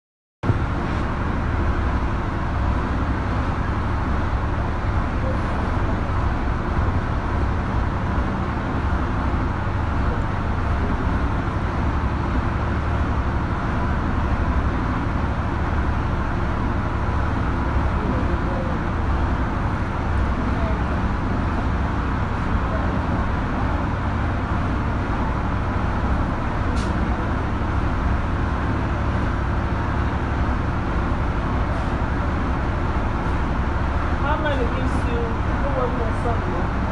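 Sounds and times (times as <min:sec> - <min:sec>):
loud background rumble: 0:00.4 - 0:36.9.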